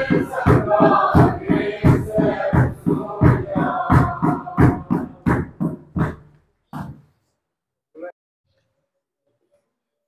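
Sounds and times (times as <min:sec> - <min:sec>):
congregation singing a hymn: 0:00.0 - 0:05.4
steady beat strokes: 0:00.0 - 0:06.3.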